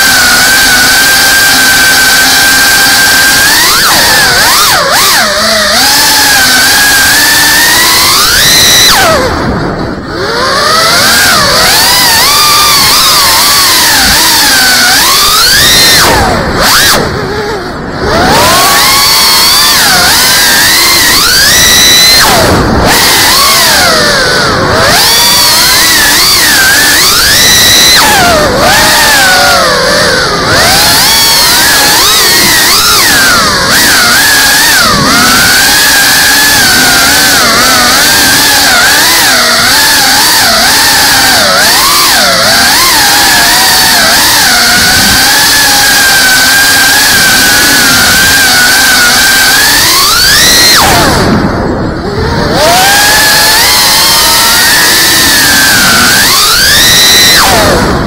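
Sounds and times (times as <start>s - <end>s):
drone motors whining: 0.0s - 58.0s.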